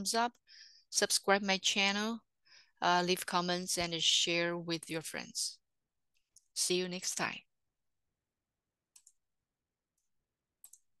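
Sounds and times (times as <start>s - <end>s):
computer mouse clicks: 8.9s - 9.2s, 9.9s - 11.0s.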